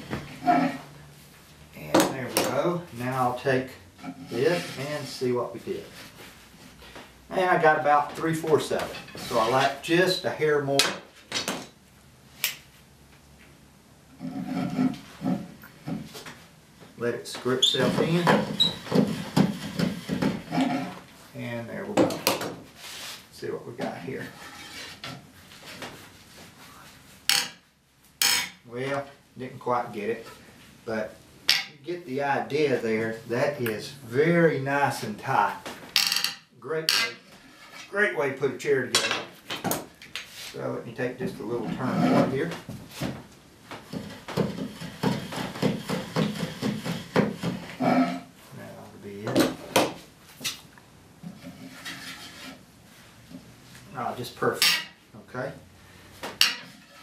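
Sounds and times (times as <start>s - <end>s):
wood rubbing and scraping on wood: 0.0s - 10.0s, 14.1s - 27.6s, 34.6s - 38.0s, 39.2s - 50.6s, 51.2s - 55.0s, 56.2s - 57.0s.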